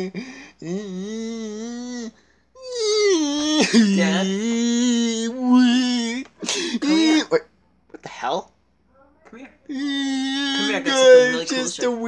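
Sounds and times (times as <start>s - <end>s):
person wailing: 0.6s - 7.4s, 9.7s - 12.0s.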